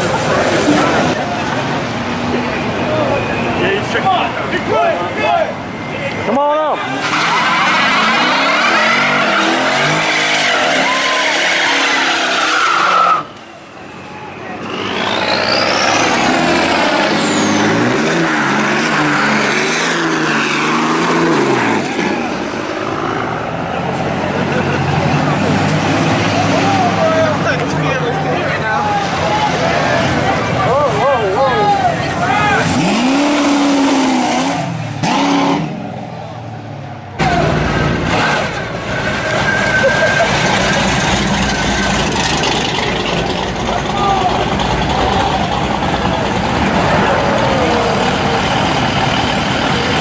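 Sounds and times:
crowd voices: 0.0s - 50.0s
tyres spinning on wet street: 0.0s - 50.0s
tyres squealing: 2.9s - 22.3s, 38.2s - 50.0s
car engine revving hard: 6.8s - 13.3s, 14.6s - 27.0s, 32.3s - 36.0s
pickup engine revving: 6.8s - 13.4s, 14.5s - 30.7s, 31.6s - 50.0s.

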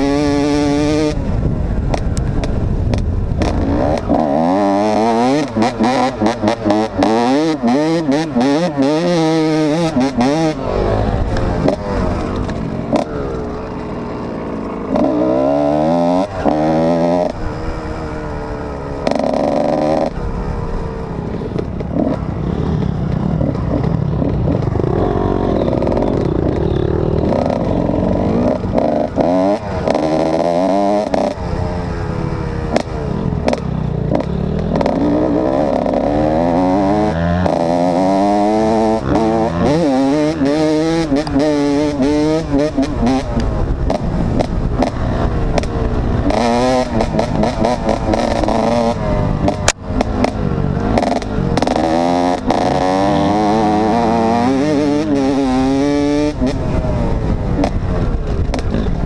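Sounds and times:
two-stroke dirt bike revving: 0.0s - 59.0s.

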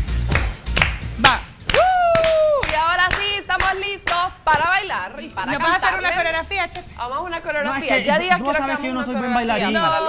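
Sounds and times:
electronic dance music: 0.0s - 2.0s
hand clapping: 0.1s - 4.7s
lively chatter: 4.7s - 10.0s.

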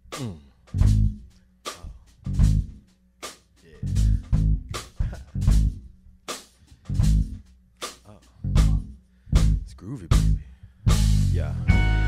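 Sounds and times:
deep bass guitar notes: 0.0s - 2.8s, 3.7s - 6.0s, 6.8s - 7.4s, 8.4s - 12.0s
guitar: 0.7s - 2.8s, 3.7s - 5.9s, 6.8s - 7.4s, 8.4s - 12.0s.

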